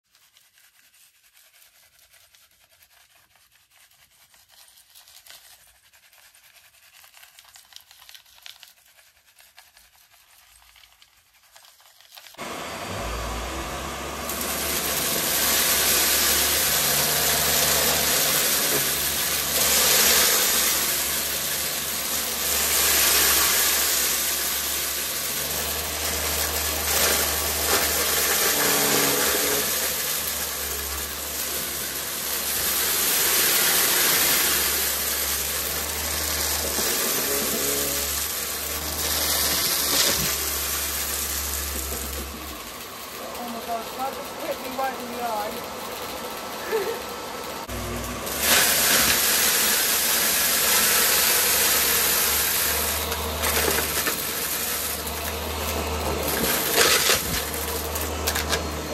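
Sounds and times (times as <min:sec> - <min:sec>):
stick vacuum running: 0:12.4 - 0:58.9.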